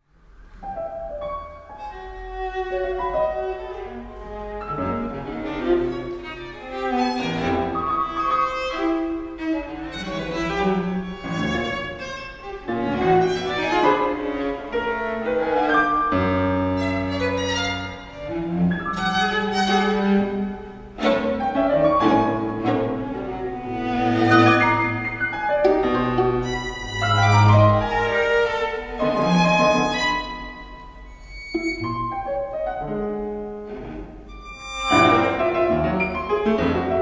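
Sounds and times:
piano quartet playing: 0.5s - 37.0s.

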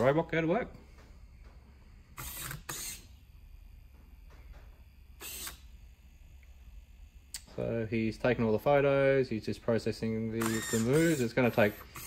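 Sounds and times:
servo motors whirring: 2.2s - 3.1s, 5.2s - 5.6s, 10.4s - 12.0s.

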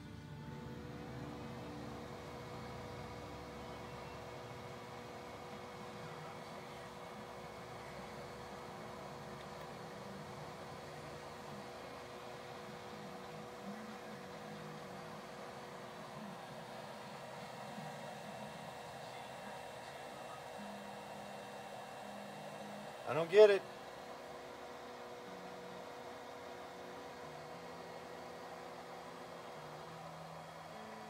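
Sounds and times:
faint steady tones: 0.0s - 31.0s
power inverter hum and whir: 0.0s - 31.0s.

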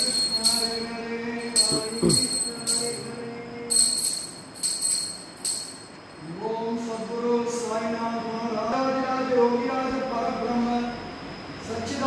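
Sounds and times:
small metal hand bell ringing: 0.0s - 6.2s.

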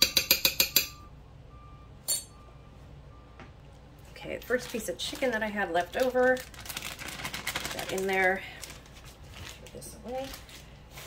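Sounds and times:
metal spoon clinking on stone: 2.1s - 2.3s.

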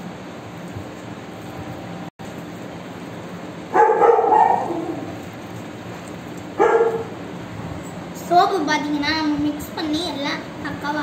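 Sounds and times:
dog barking: 3.7s - 5.2s, 6.6s - 7.2s.

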